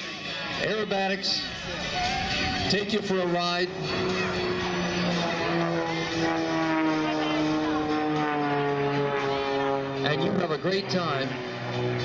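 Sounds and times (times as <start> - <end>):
propeller plane engine drone: 0.0 - 12.0.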